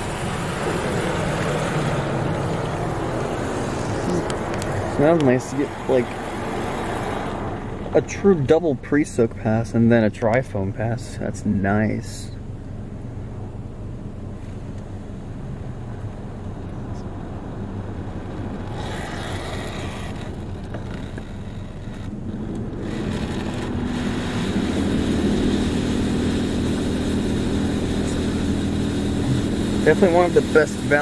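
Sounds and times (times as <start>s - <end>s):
car wash hum: 0.0s - 31.0s.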